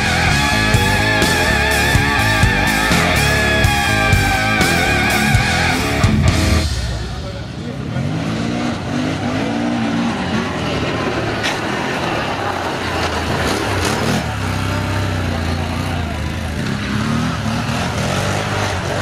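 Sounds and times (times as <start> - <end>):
atv engine revving: 0.0 - 19.0.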